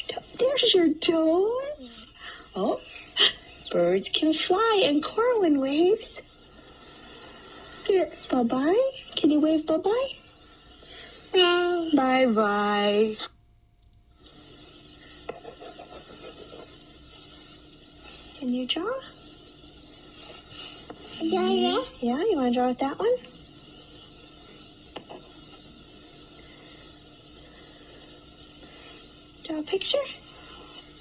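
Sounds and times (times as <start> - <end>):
faint steady hum: 0.0 - 31.0
room hiss: 0.0 - 31.0
crayon scratching on paper: 15.3 - 16.8.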